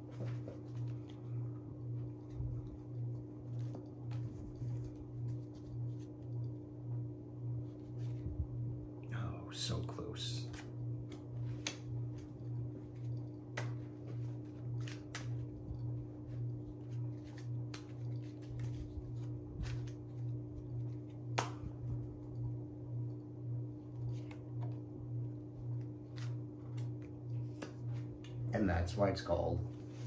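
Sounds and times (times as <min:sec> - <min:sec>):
playing cards snapping and clicking: 0:10.5 - 0:12.3, 0:13.4 - 0:15.5, 0:17.2 - 0:20.1, 0:21.3 - 0:21.7, 0:26.0 - 0:28.4.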